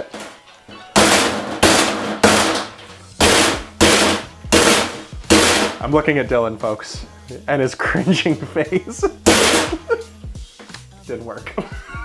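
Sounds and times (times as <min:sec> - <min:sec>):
man laughing loudly: 0:08.8 - 0:10.2, 0:11.5 - 0:12.0.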